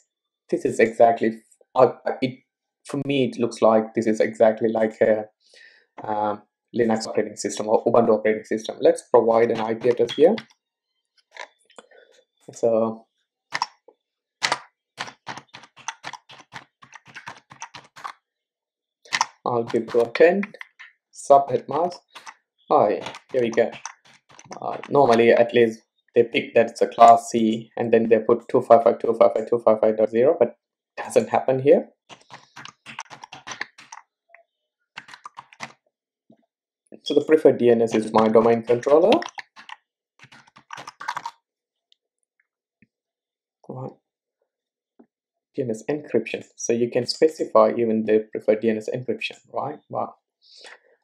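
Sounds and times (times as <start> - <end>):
rapid typing on keyboard: 9.2 - 10.5, 14.4 - 18.2, 19.1 - 25.7, 32.1 - 34.0, 35.0 - 35.8, 37.8 - 41.4.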